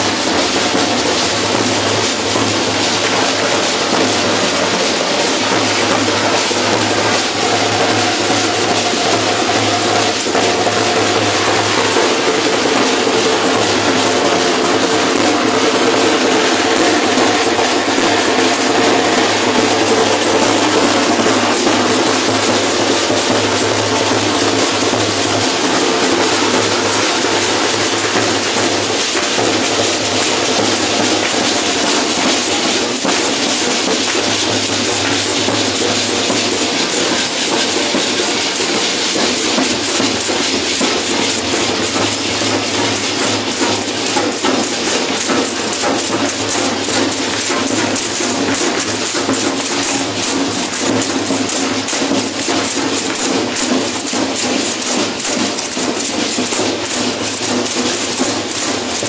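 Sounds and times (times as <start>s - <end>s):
bass drum beating: 0.0s - 51.4s
dense steady clatter: 0.0s - 59.0s.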